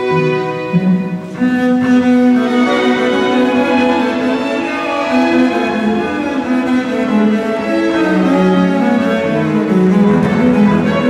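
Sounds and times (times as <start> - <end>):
bowed double bass: 0.0 - 11.0
string ensemble: 0.0 - 11.0.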